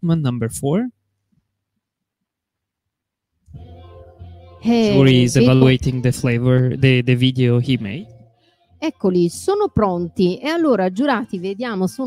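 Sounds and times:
speech: 0:00.0 - 0:00.9, 0:04.6 - 0:08.1, 0:08.8 - 0:12.0.

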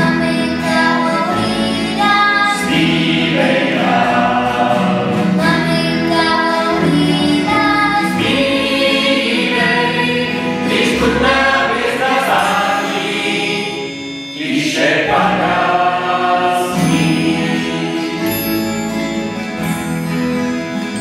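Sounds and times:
mixed choir singing: 0:00.0 - 0:18.4.

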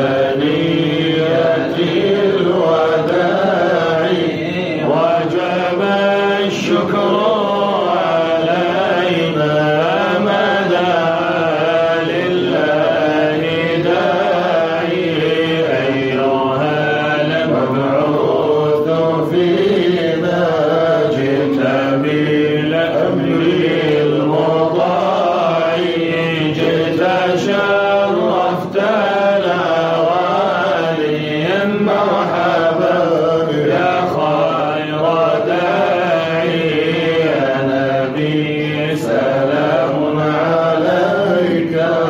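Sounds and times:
men chanting: 0:00.0 - 0:42.0.

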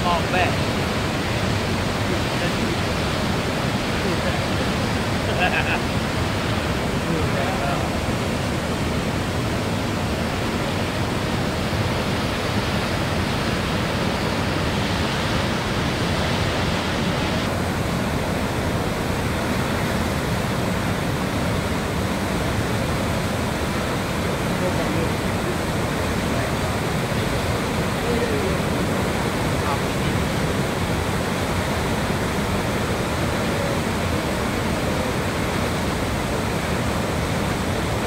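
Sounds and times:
waterfall rushing: 0:00.0 - 0:38.0.

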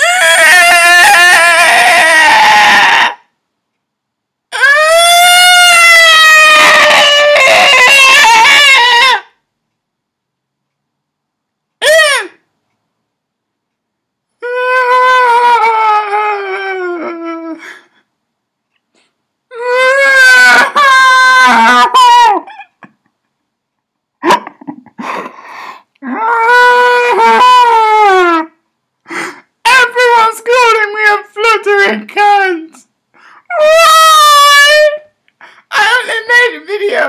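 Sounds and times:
man mock wailing: 0:00.0 - 0:03.2, 0:04.5 - 0:09.3, 0:19.5 - 0:22.9, 0:26.0 - 0:28.5.

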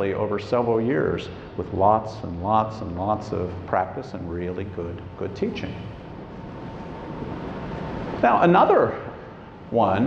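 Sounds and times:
low rumble and hiss: 0:00.0 - 0:10.0.

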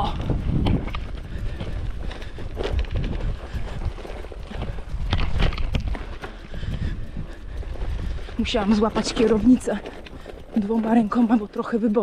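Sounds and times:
bike knocks and rattles: 0:00.0 - 0:12.0
bike rumbling over grass: 0:00.0 - 0:12.0.

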